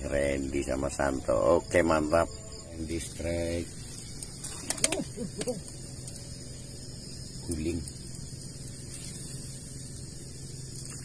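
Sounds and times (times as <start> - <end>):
low hum: 0.0 - 11.0
night insects chirring: 0.0 - 11.0.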